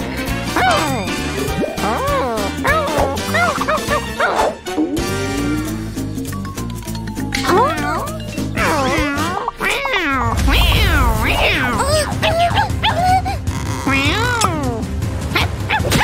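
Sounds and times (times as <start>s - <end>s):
background music: 0.0s - 16.0s
cartoon vocalizations: 0.6s - 5.8s, 7.4s - 16.0s.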